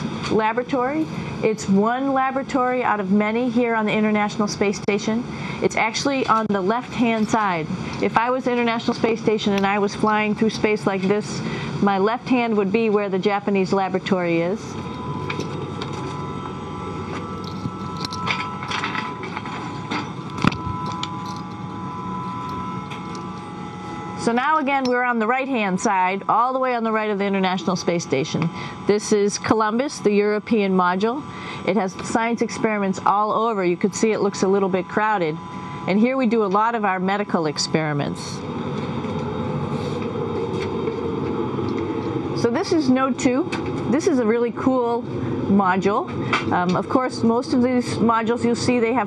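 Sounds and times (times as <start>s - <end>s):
hum of cabin fans: 0.0s - 49.0s
thin steady tones: 0.0s - 49.0s.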